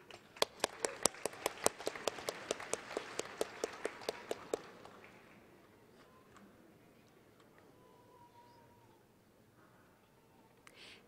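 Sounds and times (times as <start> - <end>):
audience applauding: 0.0 - 5.5
sharp evenly paced claps: 0.0 - 5.5.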